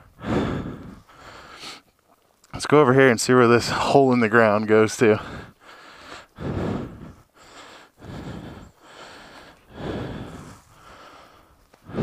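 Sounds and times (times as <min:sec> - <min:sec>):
man breathing heavily: 0:00.0 - 0:02.0, 0:05.0 - 0:12.0.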